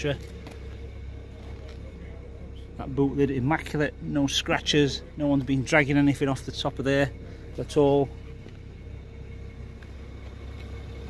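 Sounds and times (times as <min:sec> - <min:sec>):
car engine idling: 0:00.0 - 0:11.0
faint steady hum: 0:00.0 - 0:11.0.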